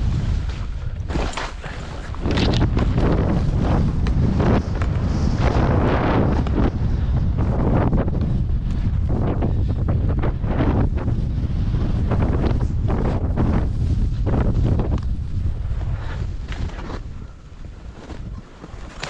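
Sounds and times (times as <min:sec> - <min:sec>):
skis scraping snow: 0:00.0 - 0:06.4, 0:15.5 - 0:19.0
wind buffeting microphone: 0:00.0 - 0:19.0.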